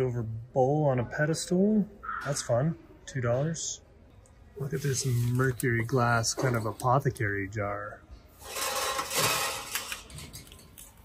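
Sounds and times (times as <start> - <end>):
glass jar rubbing and scraping: 8.4 - 10.2.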